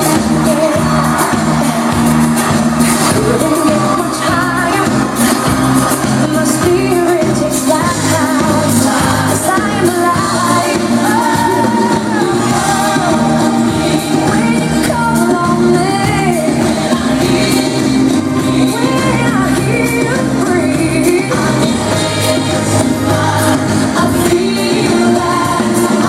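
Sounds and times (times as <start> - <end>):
loud pop song with vocals: 0.0 - 26.0.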